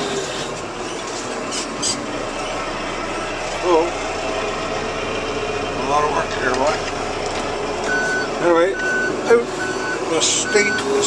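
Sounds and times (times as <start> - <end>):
vehicle reversing alarm beeping: 7.8 - 11.0.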